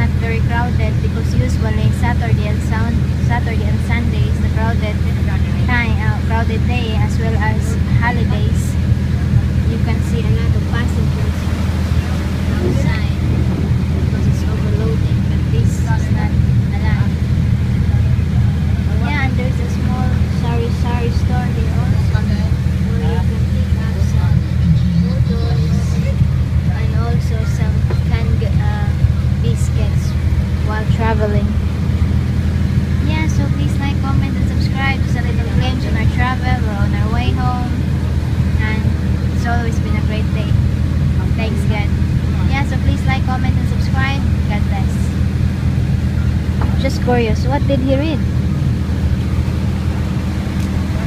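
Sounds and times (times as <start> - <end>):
boat engine drone: 0.0 - 51.0
passengers talking: 0.0 - 51.0.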